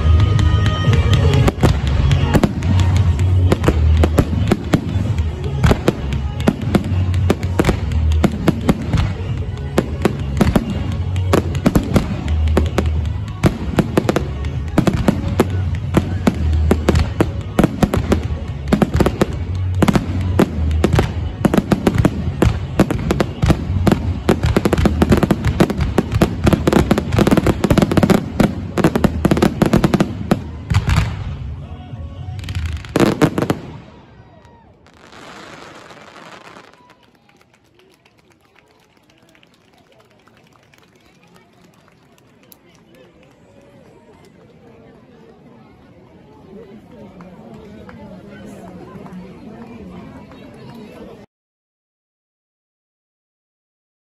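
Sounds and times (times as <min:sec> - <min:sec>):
fireworks bangs and crackles: 0:00.0 - 0:37.4.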